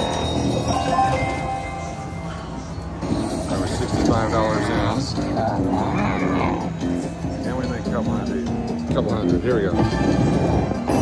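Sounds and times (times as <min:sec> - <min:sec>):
slot machine game music: 0:00.0 - 0:05.3.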